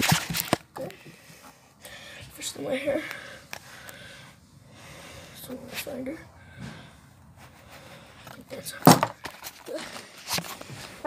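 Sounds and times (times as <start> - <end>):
handling noise: 8.8 - 11.0.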